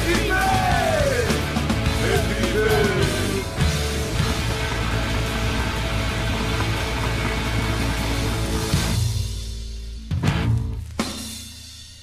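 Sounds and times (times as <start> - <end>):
distorted electric guitar: 0.0 - 9.1
bass guitar: 0.0 - 11.0
drum kit: 0.0 - 12.0.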